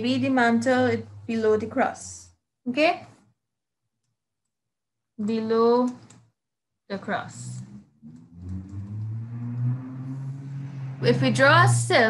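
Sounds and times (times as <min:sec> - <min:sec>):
steady low hum: 0:06.9 - 0:12.0.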